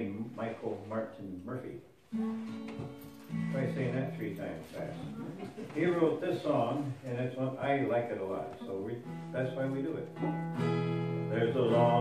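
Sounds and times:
acoustic guitar notes: 0:01.8 - 0:12.0
person speaking: 0:03.4 - 0:10.4.

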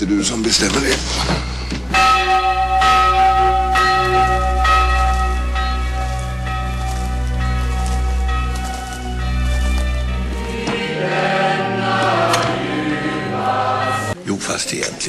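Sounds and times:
church bell tolling: 0:01.4 - 0:14.2.

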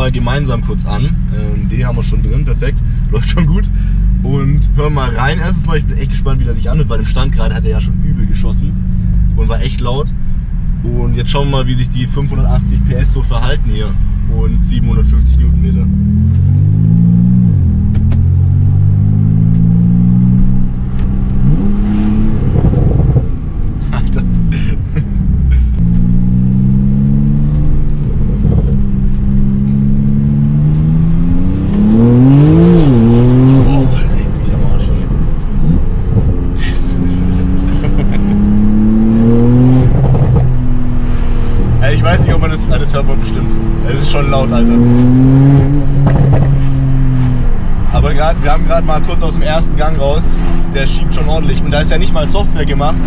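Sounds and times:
car engine accelerating: 0:00.0 - 0:53.0.

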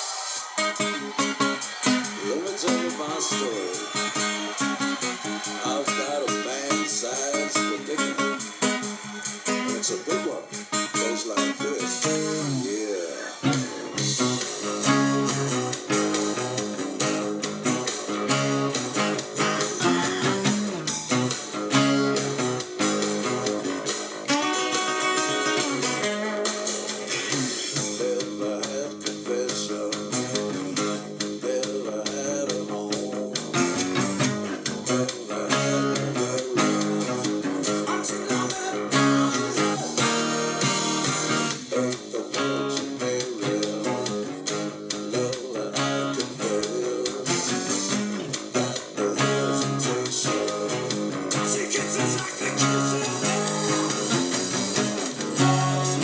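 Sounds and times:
acoustic guitars playing bluesy riff: 0:00.0 - 0:56.0
acoustic-electric guitar: 0:00.0 - 0:56.0.

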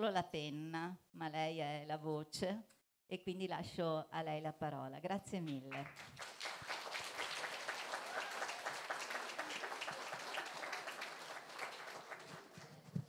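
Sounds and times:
audience applauding: 0:05.7 - 0:13.0.

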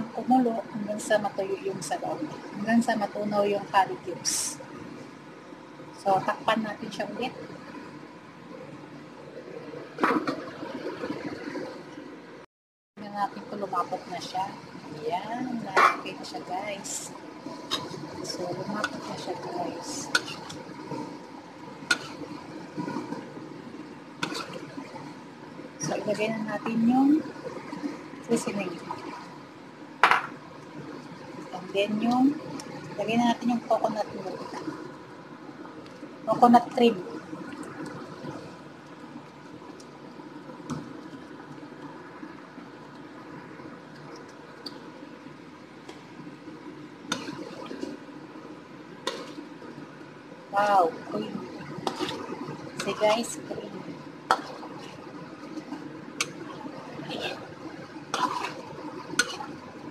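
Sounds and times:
sauce bubbling in a wok: 0:16.9 - 0:33.7, 0:34.3 - 0:59.9.

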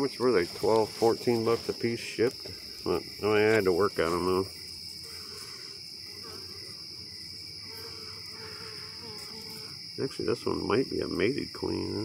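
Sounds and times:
crickets trilling: 0:00.0 - 0:12.0
honey bees buzzing: 0:00.2 - 0:12.0.

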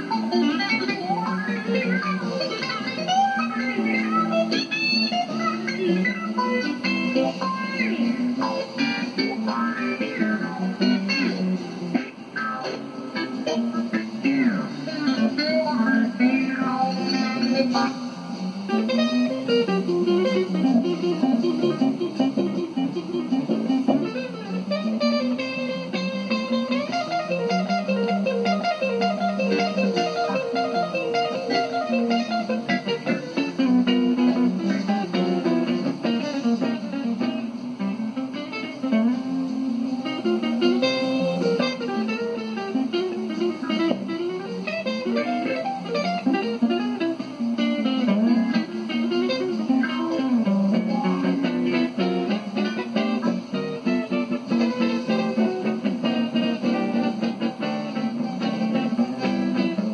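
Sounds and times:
electric guitar melody: 0:00.0 - 0:59.9.

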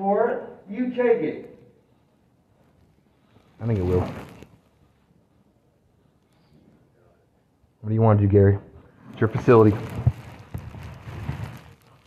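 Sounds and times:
faint room noise: 0:00.0 - 0:12.0
clothing rustling against camera: 0:02.5 - 0:05.2, 0:09.1 - 0:12.0.

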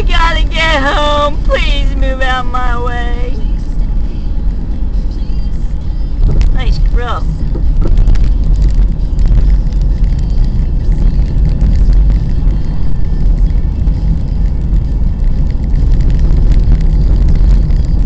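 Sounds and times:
car engine and road noise: 0:00.0 - 0:18.0.

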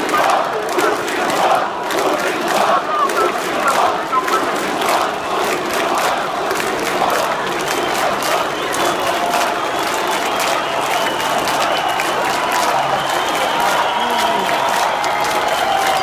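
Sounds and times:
crowd of protesters shouting: 0:00.0 - 0:16.0.

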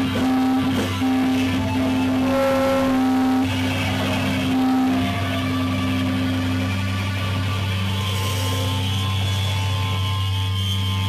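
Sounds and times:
electric guitars droning chord: 0:00.0 - 0:11.0.

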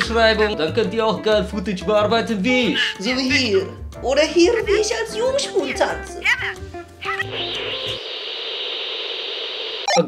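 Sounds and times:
electronic static hiss: 0:07.0 - 0:10.0.

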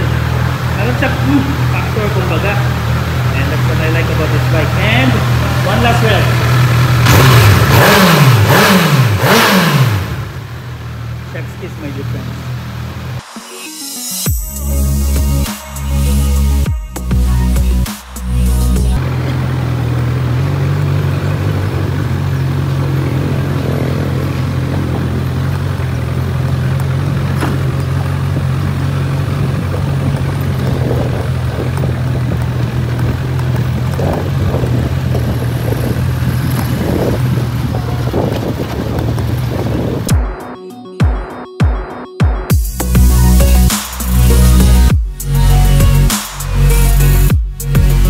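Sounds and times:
motorcycle engine running: 0:00.0 - 0:13.2, 0:16.0 - 0:40.2
background music: 0:13.2 - 0:19.0, 0:40.1 - 0:48.0
wind rush on microphone: 0:29.3 - 0:40.1.

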